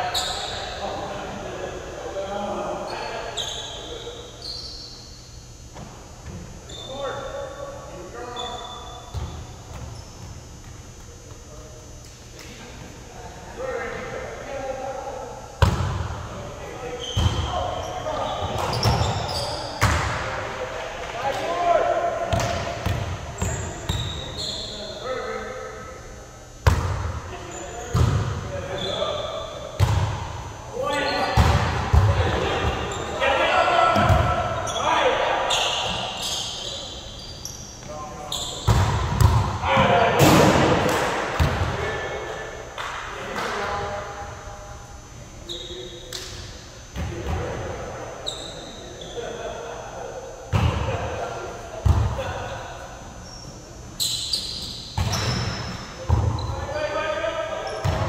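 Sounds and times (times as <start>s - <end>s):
players' voices: 0.0s - 4.4s, 11.0s - 53.8s.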